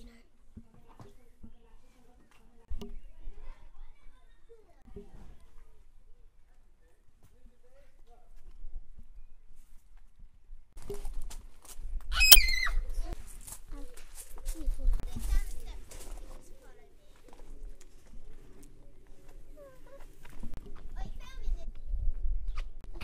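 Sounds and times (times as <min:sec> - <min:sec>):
children's voices and calls: 0:19.5 - 0:21.9
wind rumble on microphone: 0:20.4 - 0:23.0.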